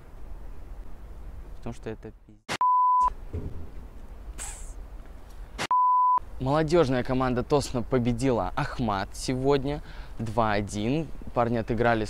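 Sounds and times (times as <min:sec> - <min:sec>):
faint outdoor background: 0:00.0 - 0:12.0
speech: 0:01.6 - 0:02.4, 0:06.4 - 0:12.0
censor beep tone: 0:02.6 - 0:03.2, 0:05.7 - 0:06.2.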